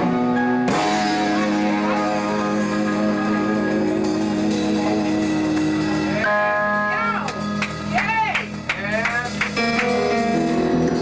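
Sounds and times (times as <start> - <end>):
rock band jamming: 0.0 - 11.0.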